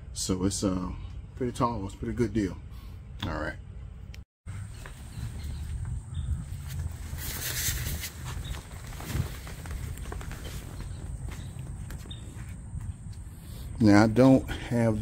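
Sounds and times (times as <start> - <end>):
footsteps on grass: 4.7 - 13.6.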